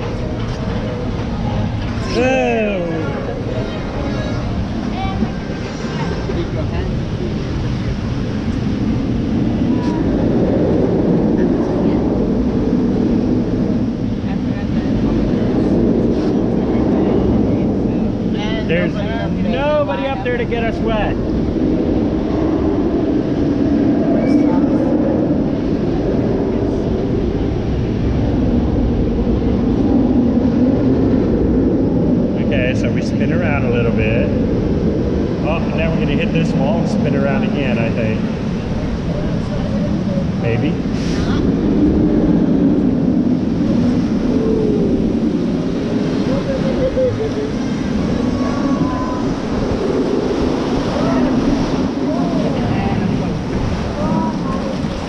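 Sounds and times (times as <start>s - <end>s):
water rushing and churning: 0.0s - 55.0s
wind buffeting camera: 0.0s - 55.0s
riders' voices: 35.3s - 41.6s.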